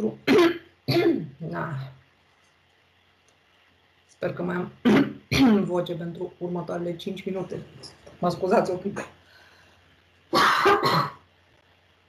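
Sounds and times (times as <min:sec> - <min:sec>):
woman coughing: 0:00.2 - 0:01.3, 0:04.8 - 0:05.6, 0:10.3 - 0:11.2.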